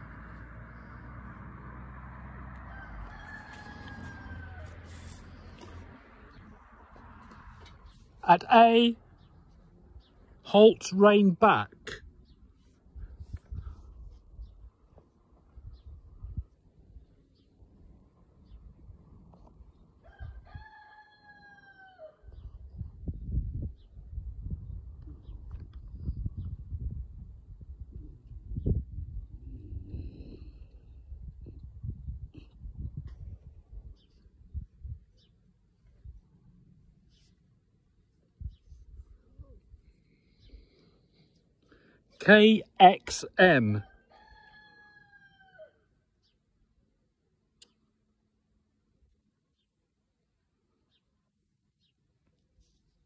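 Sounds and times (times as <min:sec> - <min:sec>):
rooster crowing: 0:02.4 - 0:05.2, 0:20.0 - 0:22.3, 0:43.8 - 0:45.9.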